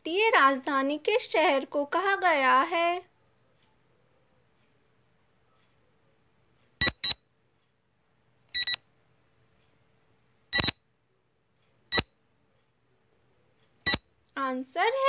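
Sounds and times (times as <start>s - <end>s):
high-pitched countdown beeps: 6.8s - 7.2s, 8.6s - 8.8s, 10.6s - 10.8s.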